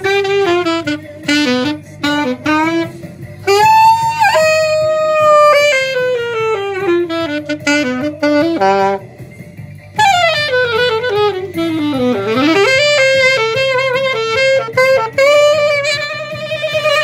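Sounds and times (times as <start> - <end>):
saxophone melody: 0.0 - 17.0.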